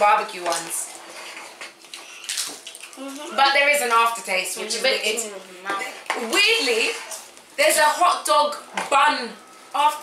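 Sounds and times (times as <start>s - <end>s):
crisps being chewed: 1.5s - 3.4s.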